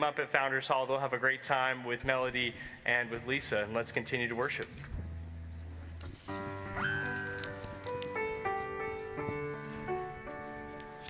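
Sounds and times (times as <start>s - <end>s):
piano chords: 3.6s - 11.0s.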